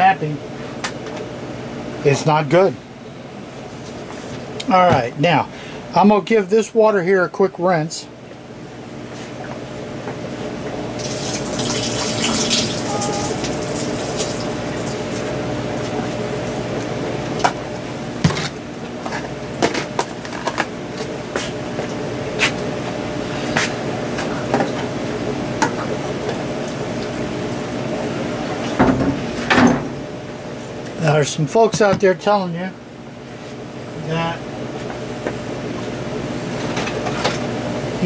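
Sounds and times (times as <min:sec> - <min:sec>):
tap water running into sink: 0:11.0 - 0:15.0.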